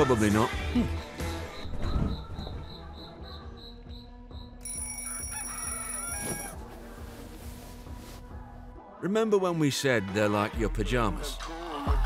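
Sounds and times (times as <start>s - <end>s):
soft background music: 0.0s - 12.0s
rooster crowing: 4.8s - 6.6s.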